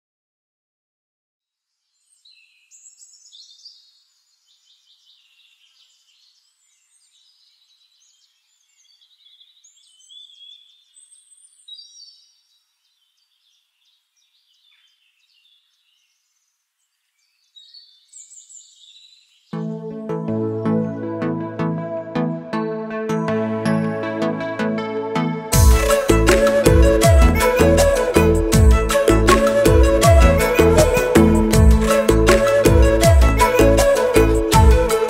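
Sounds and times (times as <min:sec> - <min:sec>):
birds chirping and trilling: 0:01.9 - 0:19.6.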